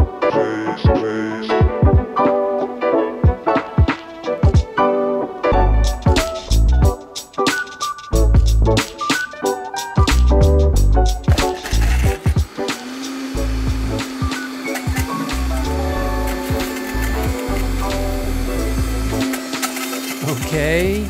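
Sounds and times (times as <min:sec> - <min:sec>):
background music with steady beat: 0:00.0 - 0:21.0
blender grinding apples: 0:11.3 - 0:21.0.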